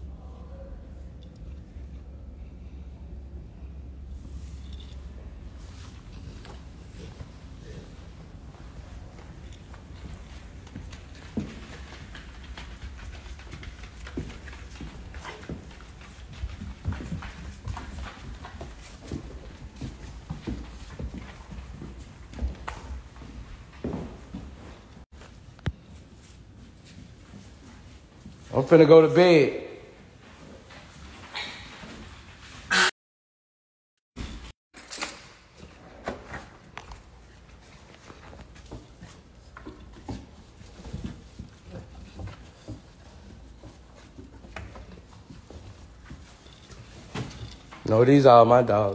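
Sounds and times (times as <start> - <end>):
dog claws clicking on hard floor: 9.5 - 19.6.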